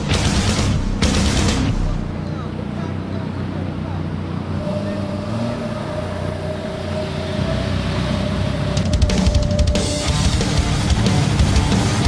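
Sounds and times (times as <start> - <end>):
car engines driving past: 0.0 - 12.0
steady tone: 1.7 - 12.0.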